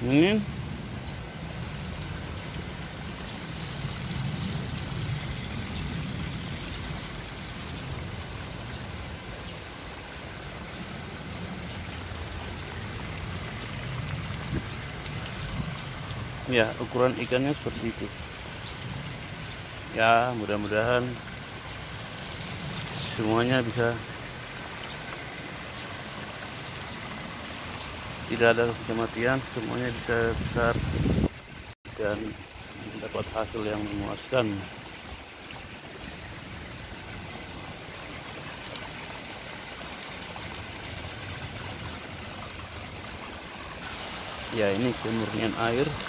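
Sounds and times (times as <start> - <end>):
water pouring from pipe into pond: 0.9 - 46.0.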